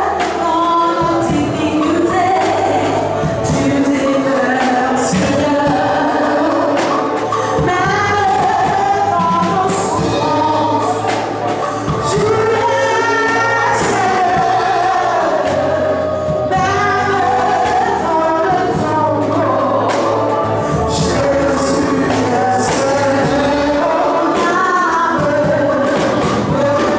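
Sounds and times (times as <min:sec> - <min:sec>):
live keyboard: 0:00.0 - 0:26.9
voices singing: 0:00.0 - 0:26.9
woman singing into a microphone: 0:00.0 - 0:26.9.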